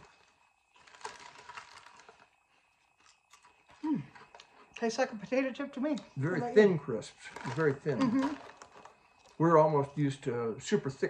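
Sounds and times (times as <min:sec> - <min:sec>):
potato chips being chewed: 0:00.0 - 0:04.8, 0:07.2 - 0:09.4.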